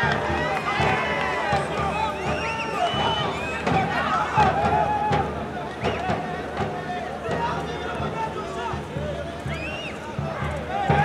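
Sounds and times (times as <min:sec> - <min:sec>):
crowd shouting and chanting: 0:00.0 - 0:11.0.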